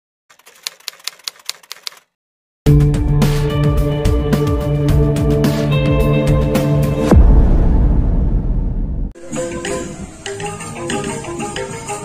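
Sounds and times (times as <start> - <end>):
typewriter keys clacking: 0.3 - 2.1.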